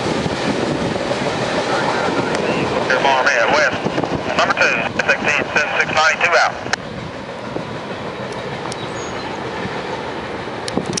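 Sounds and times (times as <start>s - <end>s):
freight train rolling on rails: 0.0s - 11.0s.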